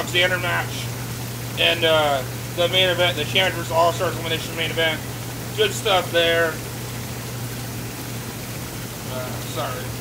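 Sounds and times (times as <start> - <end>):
churning bubbling water: 0.0 - 10.0
pump humming: 0.0 - 10.0.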